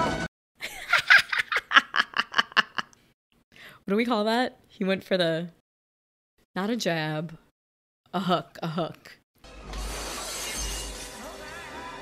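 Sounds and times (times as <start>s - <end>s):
glass breaking crash: 9.8s - 11.8s.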